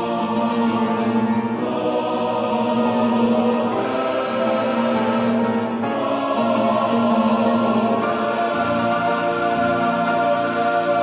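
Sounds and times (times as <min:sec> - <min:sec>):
choir singing held notes: 0:00.0 - 0:11.0.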